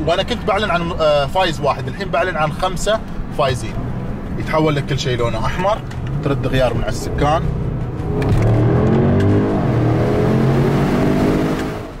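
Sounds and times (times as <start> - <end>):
car engine accelerating: 3.7 - 12.0.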